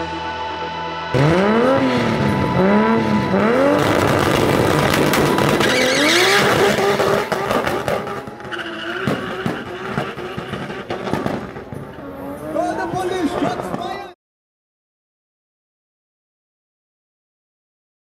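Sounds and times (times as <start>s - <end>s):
car engine revving: 1.1s - 13.8s
tyres squealing: 5.6s - 10.8s.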